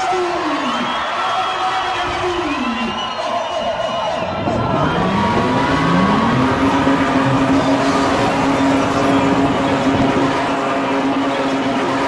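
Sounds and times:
car engine revving: 0:04.3 - 0:12.0.

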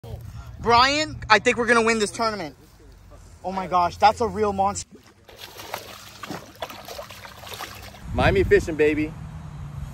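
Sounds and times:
fish splashing at water surface: 0:04.9 - 0:08.0.

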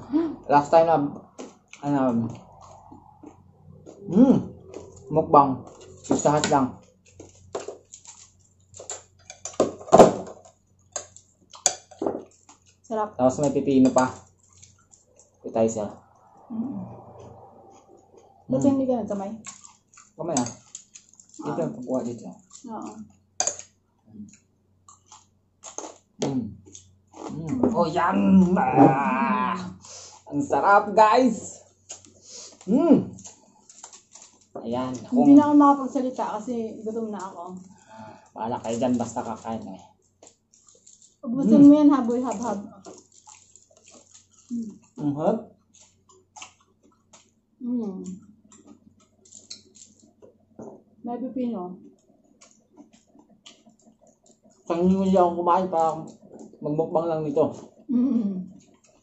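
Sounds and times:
eating sounds: 0:00.0 - 0:51.0, 0:51.8 - 0:59.0
chewing and mouth clicks: 0:01.2 - 0:27.6, 0:31.4 - 0:36.4, 0:37.0 - 0:41.2, 0:42.0 - 0:47.4, 0:48.0 - 0:50.9, 0:51.8 - 0:56.6, 0:57.5 - 0:59.0
murmured voice: 0:04.0 - 0:05.8, 0:16.4 - 0:17.7, 0:27.3 - 0:29.8.

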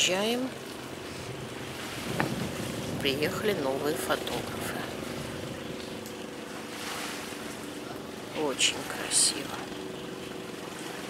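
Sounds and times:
sea water lapping: 0:00.0 - 0:11.0
wind buffeting microphone: 0:00.8 - 0:06.7.

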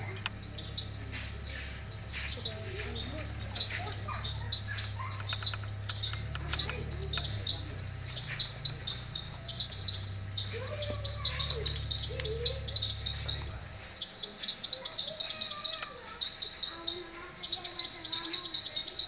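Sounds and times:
bird chirping: 0:00.0 - 0:19.0
steady low hum: 0:00.0 - 0:19.0.

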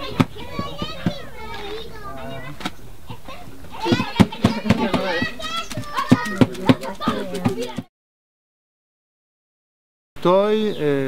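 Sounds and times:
people chattering: 0:00.0 - 0:07.9
hands slapping tortilla dough: 0:03.9 - 0:07.9.

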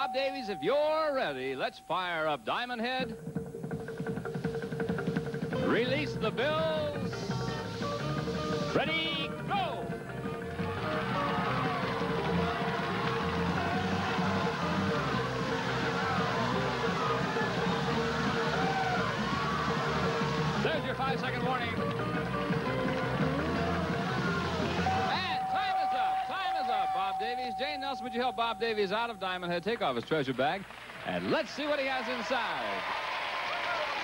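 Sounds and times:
game-show music: 0:00.0 - 0:32.4
people shouting: 0:10.6 - 0:21.0, 0:23.2 - 0:26.8.

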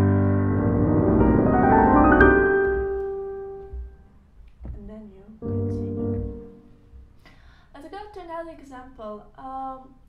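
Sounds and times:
piano rising run: 0:00.0 - 0:03.9.

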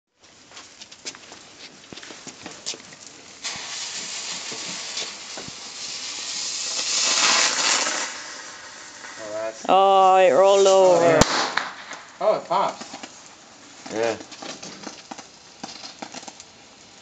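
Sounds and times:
faint crackles: 0:00.2 - 0:17.0
ground firework hissing: 0:00.2 - 0:17.0.

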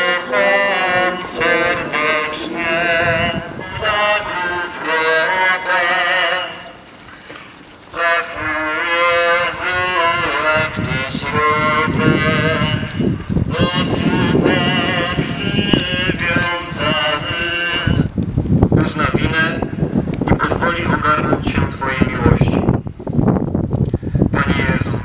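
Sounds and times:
crowd singing a hymn: 0:00.0 - 0:18.2.

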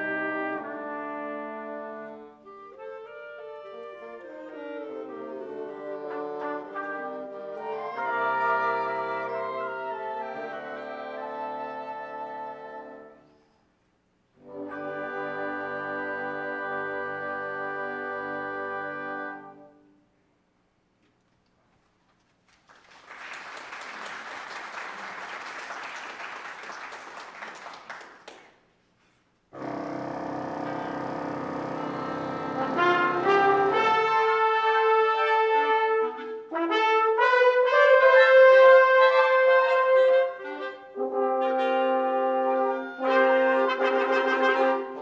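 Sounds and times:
wind band playing: 0:00.0 - 0:13.4, 0:14.3 - 0:20.0, 0:29.5 - 0:45.0
applause: 0:22.2 - 0:28.7.

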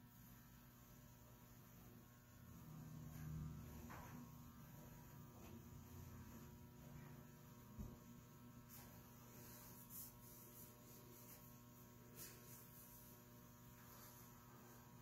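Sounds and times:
faint electrical mains hum: 0:00.0 - 0:15.0.

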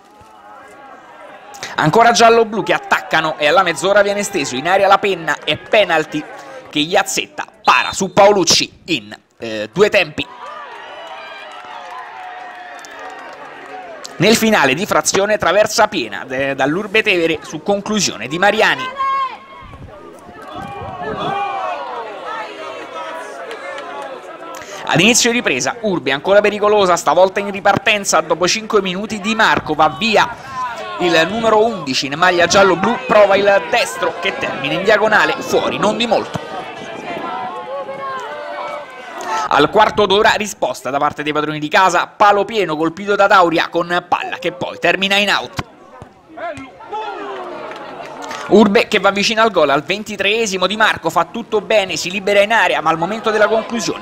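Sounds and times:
voices shouting and calling: 0:00.0 - 0:08.3, 0:10.2 - 0:40.3, 0:43.0 - 0:54.0.

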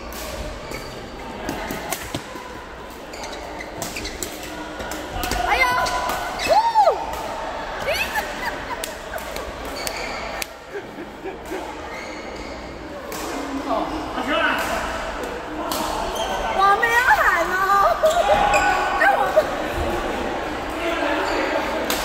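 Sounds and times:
shoes squeaking on court: 0:00.5 - 0:02.3, 0:03.0 - 0:04.6, 0:09.6 - 0:10.4, 0:11.9 - 0:12.9.

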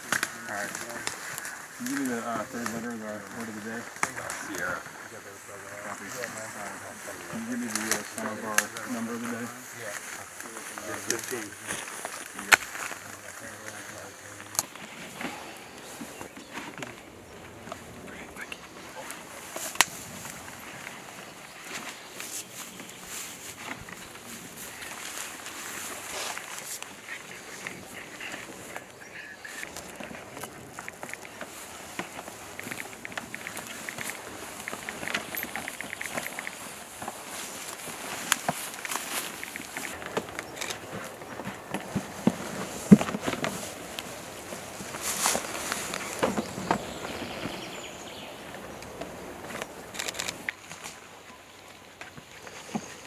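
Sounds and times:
rustling of grass and clothing: 0:00.0 - 0:53.0
quick run of ticks: 0:30.8 - 0:37.5.

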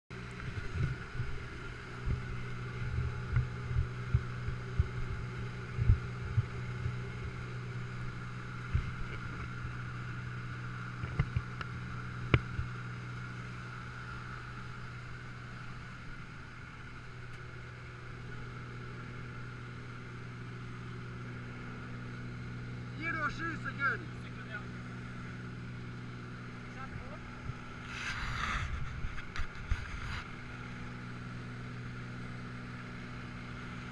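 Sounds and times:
small aircraft engine droning: 0:00.1 - 0:33.9.

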